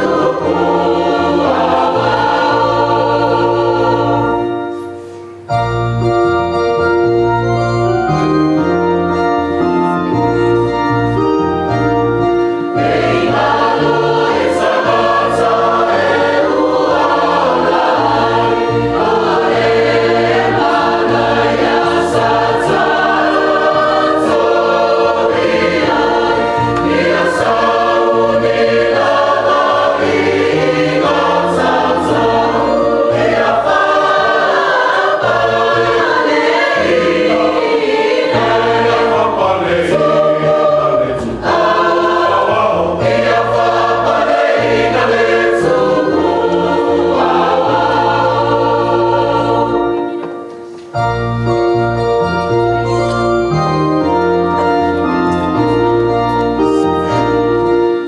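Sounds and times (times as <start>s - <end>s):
choir singing a hymn: 0.0s - 58.0s
electronic keyboard bass: 5.6s - 16.8s, 51.0s - 58.0s.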